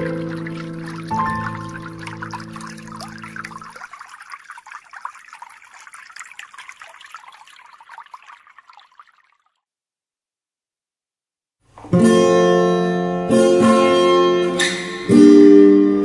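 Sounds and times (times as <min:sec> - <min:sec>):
trickle of running water: 0:00.0 - 0:09.6.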